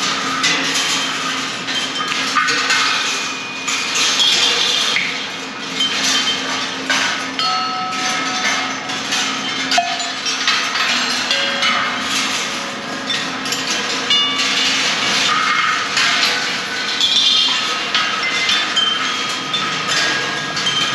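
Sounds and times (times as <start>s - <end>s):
balls clattering on wire tracks: 0.0s - 20.9s
ringing tones from struck metal: 7.4s - 14.8s.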